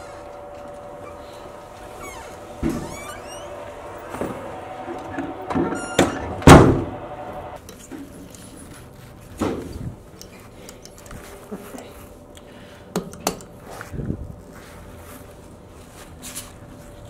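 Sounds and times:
steady hum: 0.0s - 17.0s
door shutting with a heavy thud: 2.4s - 7.2s.

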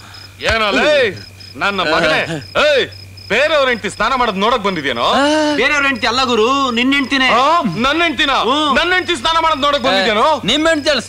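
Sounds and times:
crickets chirping: 0.0s - 11.0s
person shouting without words: 1.9s - 2.4s.

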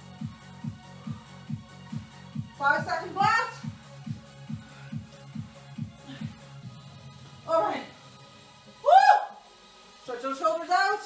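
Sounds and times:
woman's high vocal whoop: 8.8s - 9.4s.

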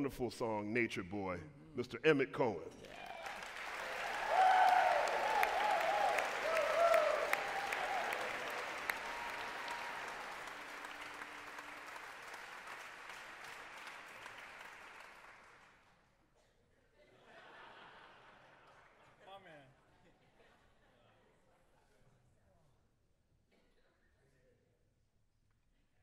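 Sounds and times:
audience cheering: 2.8s - 15.3s
audience applauding: 2.8s - 15.8s.

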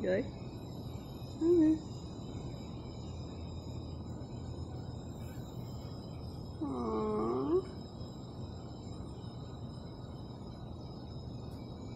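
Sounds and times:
faint background hum: 0.0s - 11.9s.

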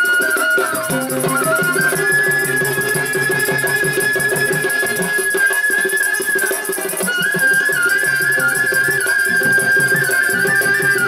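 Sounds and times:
hand drum rhythm: 0.0s - 5.6s, 6.2s - 11.0s
flute holding long high note: 0.0s - 11.0s
small hand cymbals chiming: 0.0s - 11.0s.

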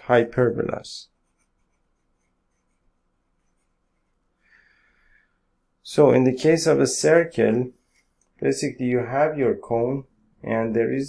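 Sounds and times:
stylus scratching on tablet: 0.7s - 4.4s, 7.7s - 8.2s.

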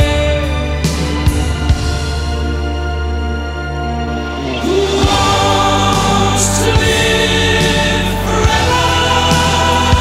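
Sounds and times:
orchestral music: 0.0s - 10.0s
boys' choir singing: 4.4s - 10.0s.

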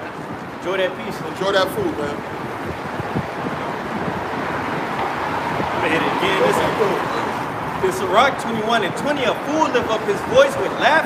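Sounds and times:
traffic going by: 0.0s - 11.0s
wind on microphone: 0.0s - 11.0s.

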